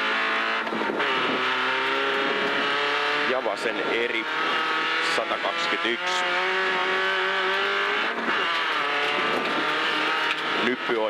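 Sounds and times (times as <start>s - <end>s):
rally car engine revving: 0.0s - 11.0s.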